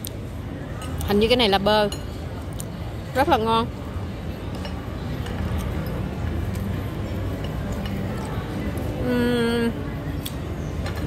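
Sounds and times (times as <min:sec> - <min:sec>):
low murmur of room noise: 0:00.0 - 0:11.0
forks clinking on plates: 0:04.5 - 0:06.4.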